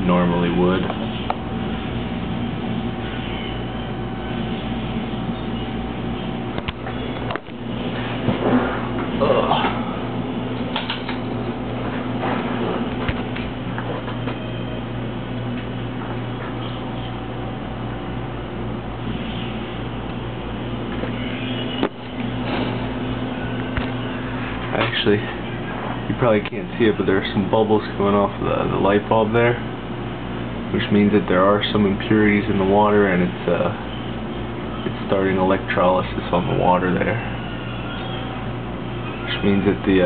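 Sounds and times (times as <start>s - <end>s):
electrical hum with buzz: 0.0s - 40.0s.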